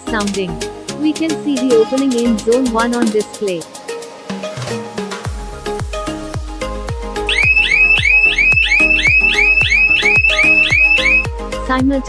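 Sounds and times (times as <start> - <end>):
background music with steady beat: 0.0 - 12.0
burglar alarm siren chirping: 7.3 - 11.3.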